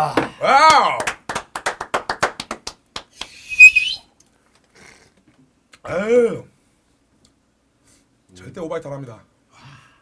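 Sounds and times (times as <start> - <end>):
hand claps: 0.6 - 3.4.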